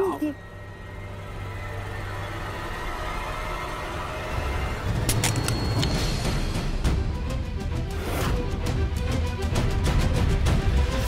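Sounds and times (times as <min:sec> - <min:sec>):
tense dramatic drone music: 0:00.0 - 0:11.0.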